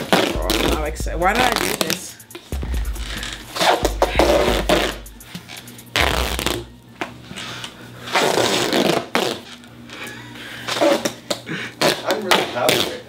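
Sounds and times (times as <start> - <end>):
duct tape tearing off roll: 0.0 - 0.8, 3.5 - 6.7, 7.4 - 9.7, 10.7 - 13.0.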